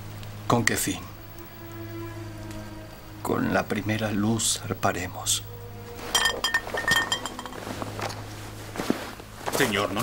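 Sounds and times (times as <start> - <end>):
drinking glasses clinking: 6.0 - 8.2.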